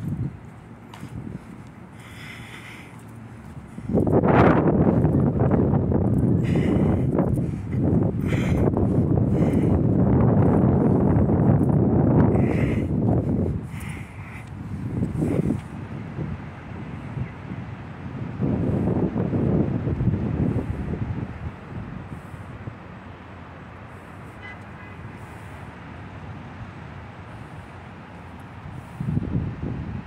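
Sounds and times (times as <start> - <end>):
low city rumble: 0.0 - 30.0.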